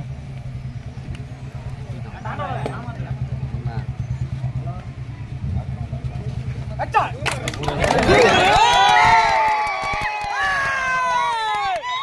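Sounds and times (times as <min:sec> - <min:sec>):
low pulsing drone: 0:00.0 - 0:07.2
faint crowd voices: 0:00.0 - 0:10.0.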